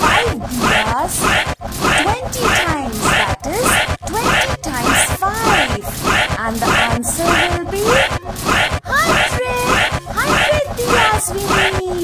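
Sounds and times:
voice chanting: 0:00.0 - 0:12.0.

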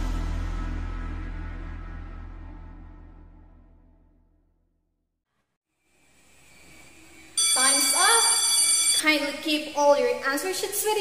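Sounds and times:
high ringing tones: 0:07.2 - 0:09.6
woman speaking: 0:07.4 - 0:11.0.

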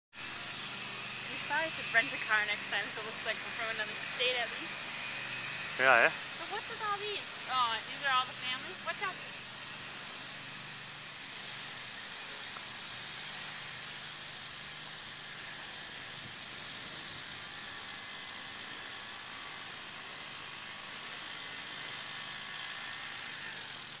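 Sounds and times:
outdoor background hiss: 0:00.2 - 0:11.2
person speaking: 0:05.8 - 0:06.1.

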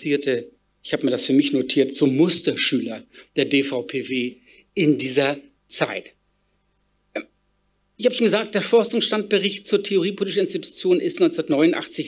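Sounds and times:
man speaking: 0:00.0 - 0:06.2, 0:08.0 - 0:12.0.

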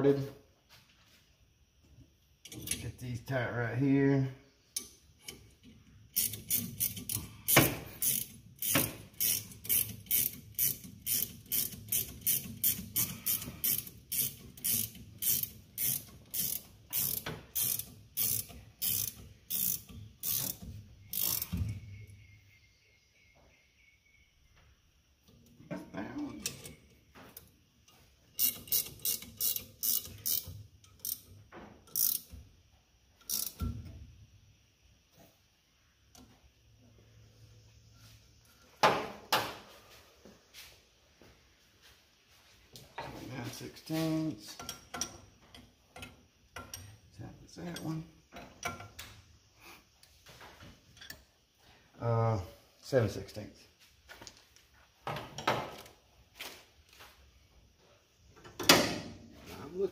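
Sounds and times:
ratcheting wrench clicking: 0:04.7 - 0:21.6, 0:28.3 - 0:32.4, 0:33.2 - 0:33.8.

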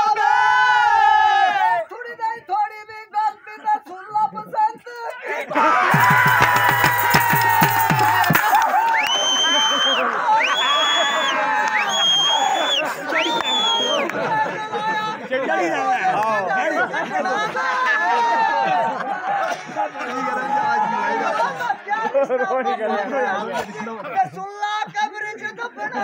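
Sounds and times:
crowd shouting: 0:00.0 - 0:01.9, 0:05.2 - 0:23.5
drum beating quickly: 0:05.9 - 0:08.7.

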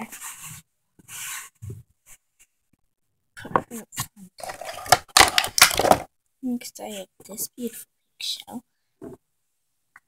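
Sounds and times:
toy figures rustling and clicking: 0:04.0 - 0:06.1.

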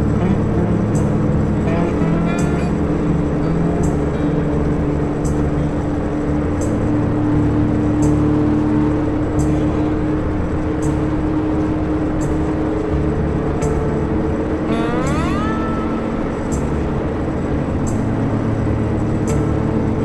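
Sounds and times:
motorcycle engine: 0:00.0 - 0:20.0
music: 0:00.0 - 0:20.0
short high stroke: 0:14.7 - 0:17.0.

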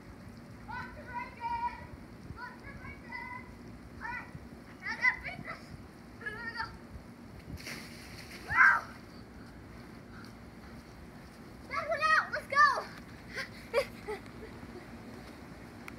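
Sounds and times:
child shouting: 0:00.7 - 0:06.8, 0:08.5 - 0:08.9, 0:11.7 - 0:13.0
splashing on a water slide: 0:07.6 - 0:09.0.

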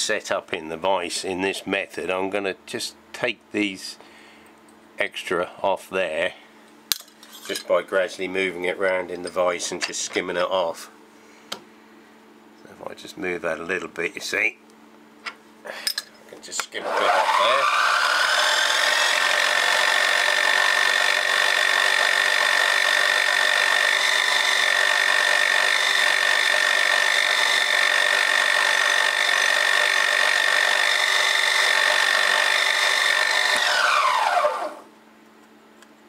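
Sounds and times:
milling machine cutting metal: 0:16.8 - 0:34.8.

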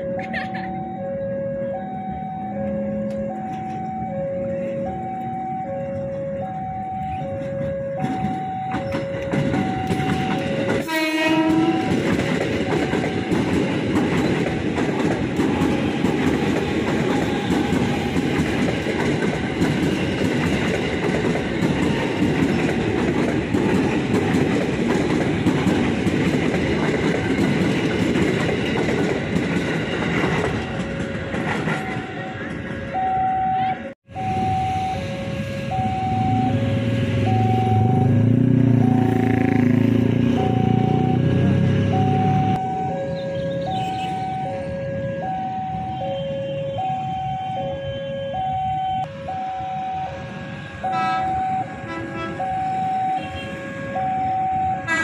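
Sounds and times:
train wheels clattering on rails: 0:07.0 - 0:32.9
train horn blast: 0:10.4 - 0:12.1, 0:17.1 - 0:18.2, 0:34.3 - 0:38.3, 0:50.0 - 0:55.0.

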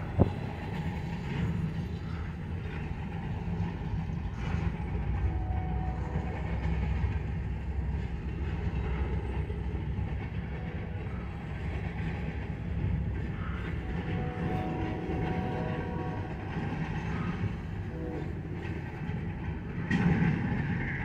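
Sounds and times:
freight train wheels rumbling: 0:00.0 - 0:21.0.

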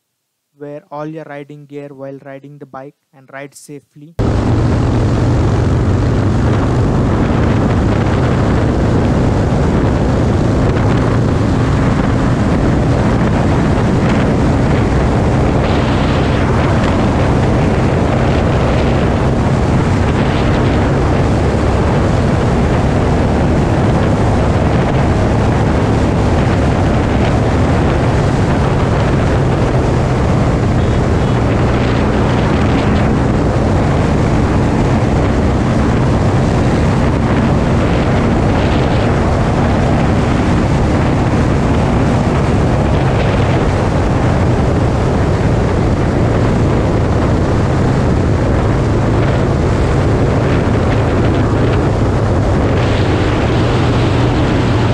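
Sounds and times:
heavy wind noise: 0:04.2 - 0:54.9
motorcycle engine running: 0:04.2 - 0:54.9.

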